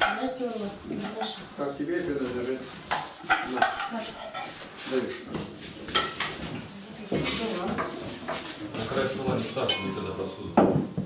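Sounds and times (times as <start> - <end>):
metal pots and spoons clattering: 0.0 - 1.4, 2.9 - 4.6, 5.9 - 8.4, 9.5 - 11.0.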